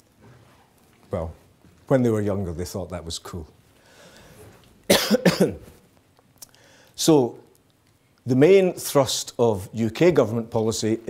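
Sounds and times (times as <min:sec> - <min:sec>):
man coughing: 0:04.9 - 0:05.8.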